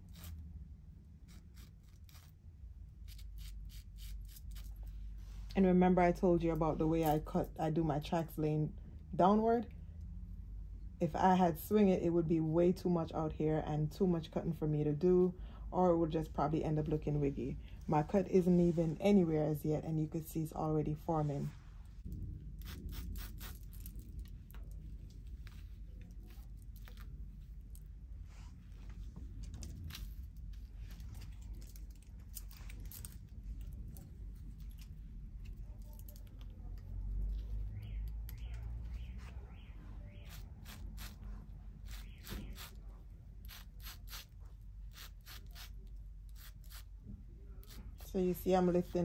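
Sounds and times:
shears snipping hair: 0:01.2 - 0:02.4, 0:40.2 - 0:41.2, 0:41.8 - 0:42.8, 0:43.4 - 0:44.3, 0:44.9 - 0:46.9
low handling rumble: 0:15.3 - 0:40.3.

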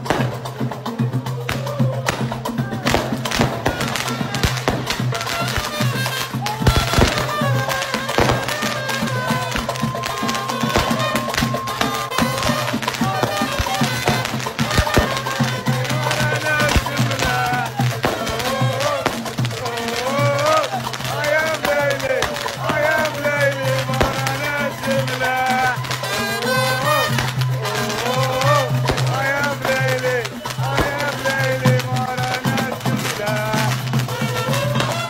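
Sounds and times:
steady drumbeat: 0:00.0 - 0:35.0
group chanting: 0:08.2 - 0:33.7.

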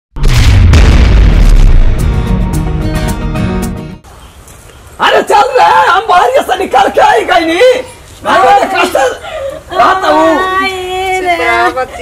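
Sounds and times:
heavy low rumble: 0:00.2 - 0:02.8
sharp hit: 0:00.2 - 0:03.1
deep cinematic impact: 0:00.2 - 0:03.6.

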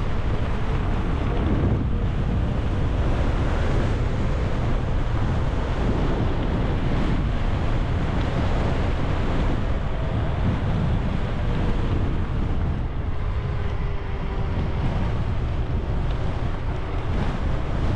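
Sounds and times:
wind buffeting microphone: 0:00.0 - 0:17.9.

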